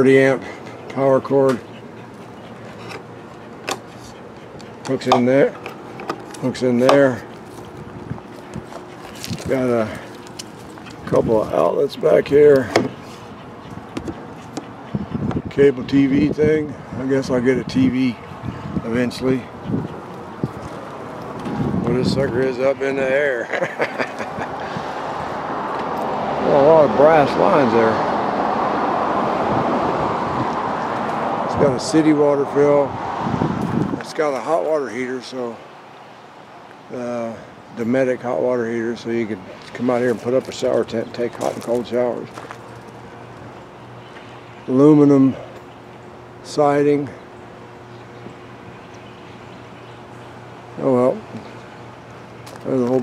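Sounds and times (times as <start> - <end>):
traffic roar on busy road: 0.0 - 23.0, 23.7 - 34.5
low background hum: 0.0 - 28.0.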